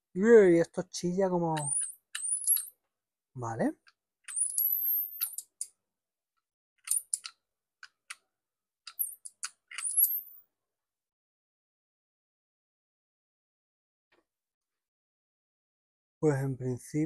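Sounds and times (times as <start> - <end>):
scattered clicks: 6.8 - 8.2.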